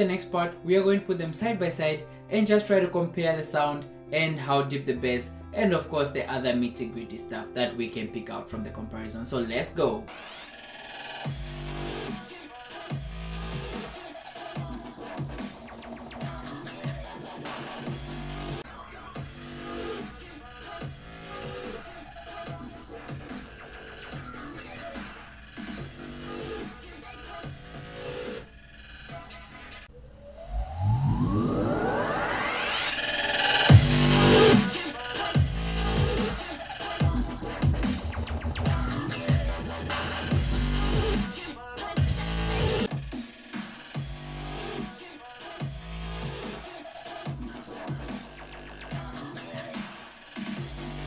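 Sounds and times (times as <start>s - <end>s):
electronic dance music with dubstep beat: 10.1s - 29.8s, 30.8s - 51.0s
rising synth sweep: 29.9s - 34.8s
bass-heavy drop: 30.4s - 34.8s, 35.4s - 36.4s, 37.0s - 41.4s, 42.0s - 42.9s.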